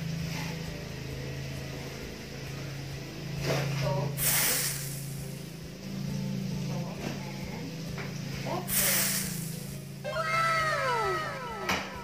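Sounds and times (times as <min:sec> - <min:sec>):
cat meowing: 0:10.1 - 0:12.0.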